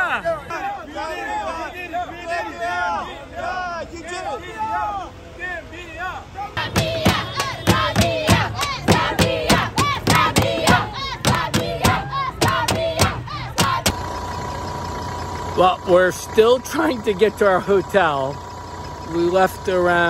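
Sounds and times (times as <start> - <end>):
crowd chanting and shouting: 0.0 - 14.6
stick beating plastic jerry can: 6.7 - 13.9.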